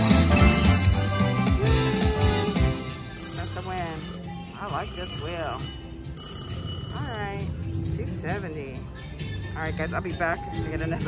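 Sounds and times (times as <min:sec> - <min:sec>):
electronic bell ringing: 0:00.0 - 0:07.4
slot machine jingle: 0:00.0 - 0:07.5.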